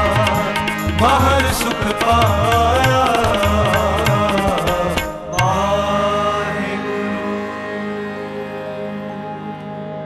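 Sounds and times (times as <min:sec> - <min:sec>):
person singing: 0:00.0 - 0:09.1
harmonium: 0:00.0 - 0:10.0.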